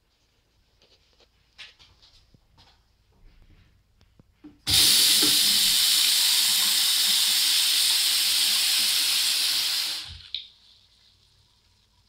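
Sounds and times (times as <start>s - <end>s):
faucet water splashing into basin: 4.7s - 12.0s.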